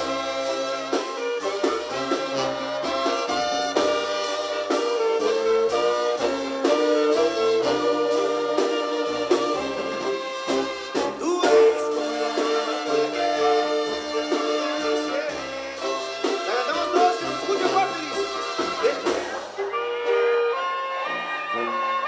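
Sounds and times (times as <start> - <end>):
brass section playing chords: 0.0 - 22.0
sousaphone bass line: 1.8 - 20.4.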